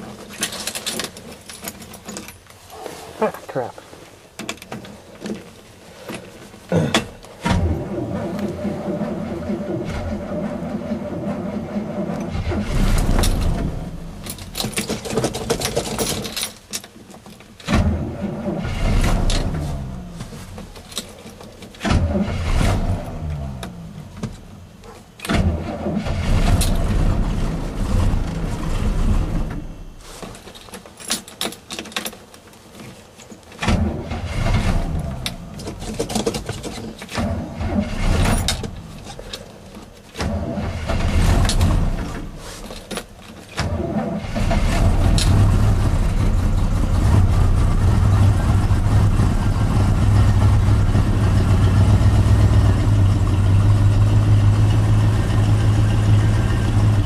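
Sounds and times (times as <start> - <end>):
engine cranking with starter: 7.0 - 16.6, 17.6 - 21.1, 21.7 - 24.1, 25.2 - 29.7, 33.6 - 57.0.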